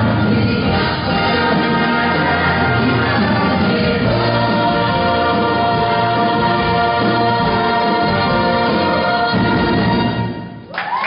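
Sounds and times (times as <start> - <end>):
cast singing in chorus: 0.0 - 9.8
musical accompaniment: 0.0 - 11.0.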